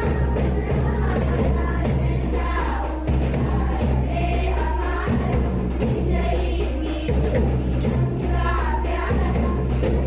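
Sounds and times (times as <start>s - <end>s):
group of voices singing: 0.0s - 10.0s.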